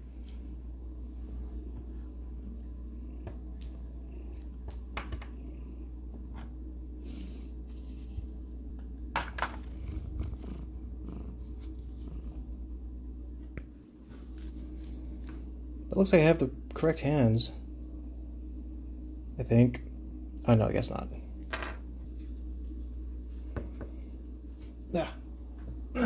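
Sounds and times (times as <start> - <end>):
cat purring: 1.4 - 8.2, 9.5 - 12.8.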